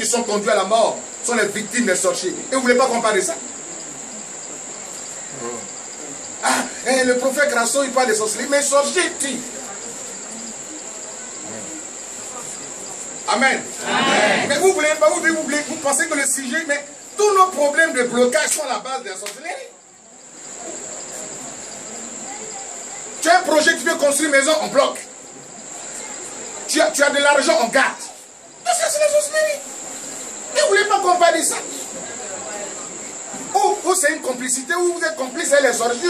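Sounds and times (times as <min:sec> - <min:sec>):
crickets trilling: 0:00.0 - 0:36.0
faint voice murmur: 0:03.4 - 0:06.9, 0:09.3 - 0:14.7, 0:19.7 - 0:23.2, 0:25.0 - 0:26.8, 0:31.5 - 0:34.3.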